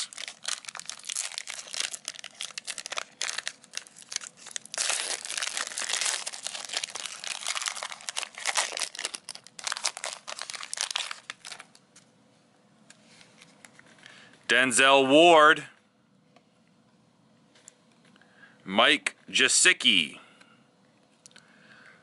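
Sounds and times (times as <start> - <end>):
foil wrapper crinkling and tearing: 0.0 - 11.8.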